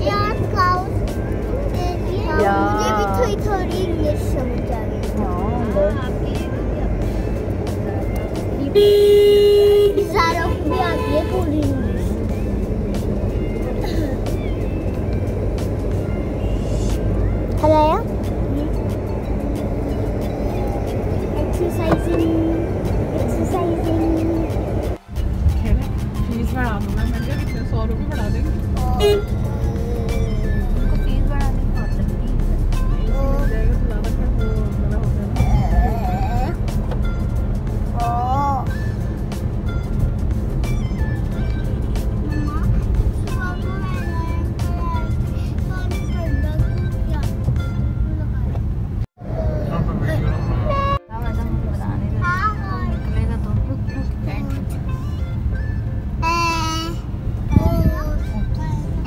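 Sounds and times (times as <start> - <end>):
car engine and road rumble: 0.0 - 59.0
vehicle horn: 8.6 - 11.6, 28.8 - 29.5, 50.4 - 51.6.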